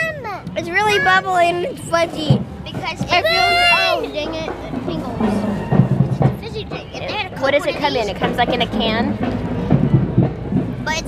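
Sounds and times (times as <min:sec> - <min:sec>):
music with heavy drumbeats: 0:01.8 - 0:11.0.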